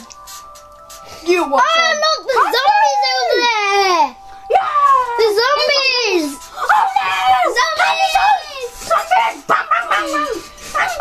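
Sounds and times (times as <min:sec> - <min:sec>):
child making squeaky voice sounds: 0:01.3 - 0:11.0.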